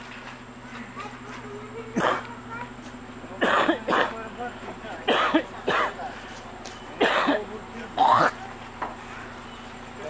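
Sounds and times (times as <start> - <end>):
quiet steady background noise: 0.0 - 10.0.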